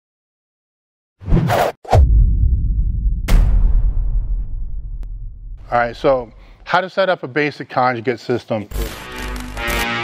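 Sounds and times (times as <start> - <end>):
low rumble: 2.0 - 6.6
sharp sound effect hits: 3.0 - 5.8.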